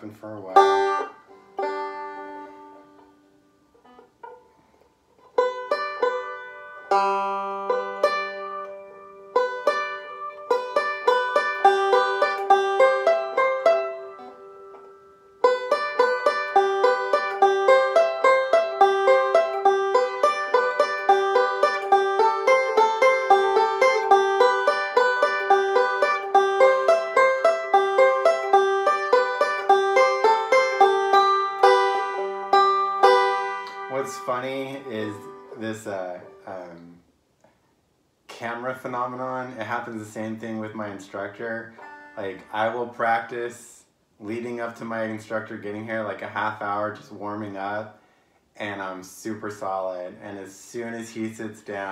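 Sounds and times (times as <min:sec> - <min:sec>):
banjo being picked: 0:00.0 - 0:37.0, 0:38.3 - 0:47.9.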